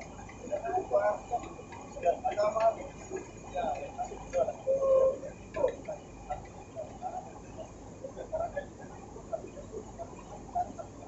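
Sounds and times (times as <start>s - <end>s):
faint steady background noise: 0.0s - 11.0s
indistinct voices talking: 0.0s - 11.0s.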